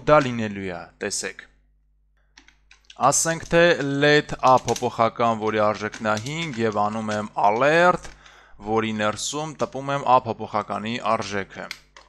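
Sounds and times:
man talking: 0.0s - 1.5s, 2.9s - 11.8s
computer keyboard typing: 2.4s - 8.3s.

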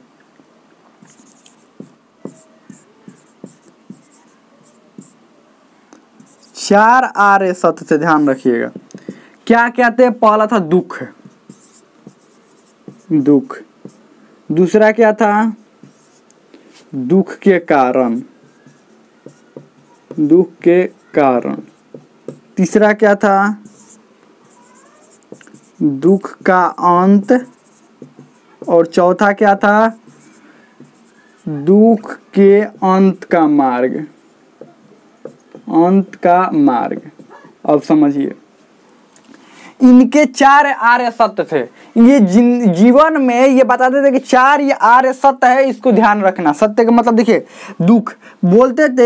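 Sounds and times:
marker squeaking on whiteboard: 1.0s - 5.2s, 6.2s - 6.8s, 10.6s - 14.0s, 15.4s - 16.3s, 18.0s - 37.4s.

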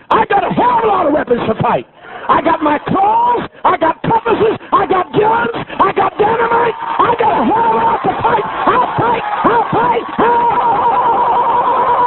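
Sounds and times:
high-pitched held shout: 4.2s - 12.0s.

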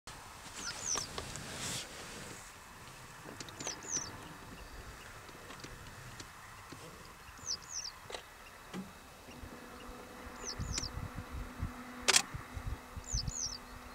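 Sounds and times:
goldfinch two-note calls: 9.3s - 11.0s, 13.0s - 13.9s.

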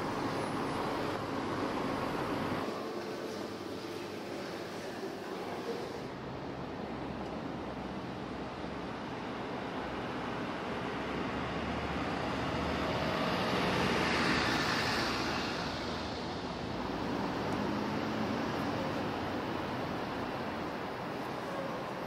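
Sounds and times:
city street traffic: 0.0s - 22.0s.

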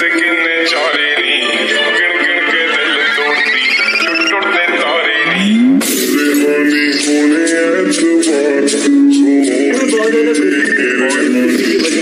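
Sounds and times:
song with singing voice: 0.0s - 12.0s.

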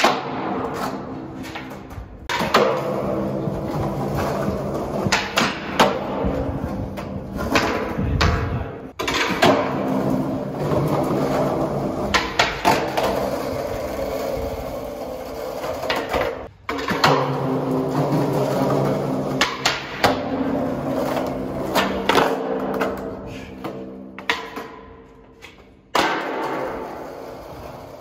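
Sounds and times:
skateboard clacks: 0.0s - 28.0s
skateboard wheels rolling on concrete: 0.0s - 28.0s.

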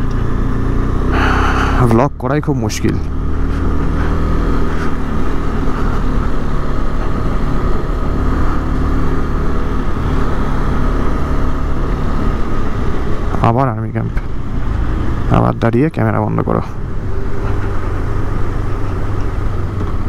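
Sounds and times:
motorcycle engine running: 0.0s - 2.2s.

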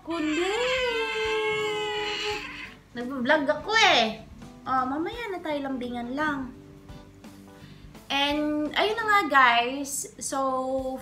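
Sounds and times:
cat meowing: 0.2s - 2.8s.

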